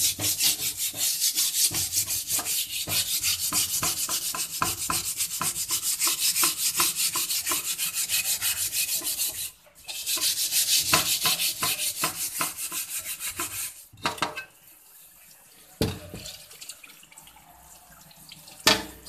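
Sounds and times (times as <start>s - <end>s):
steel wool scrubbing a wok: 0.0s - 14.6s.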